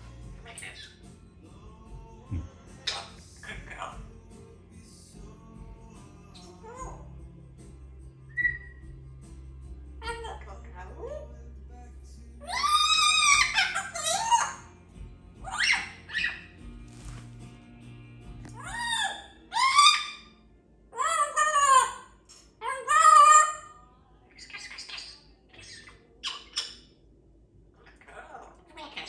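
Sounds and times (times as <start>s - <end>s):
parrot whistled calls: 8.3s - 8.8s, 12.4s - 14.6s, 15.4s - 16.5s, 18.6s - 20.3s.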